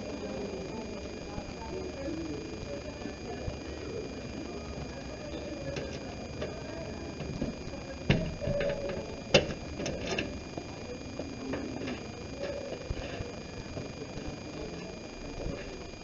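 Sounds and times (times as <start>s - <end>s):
faint high steady whine: 0.0s - 16.0s.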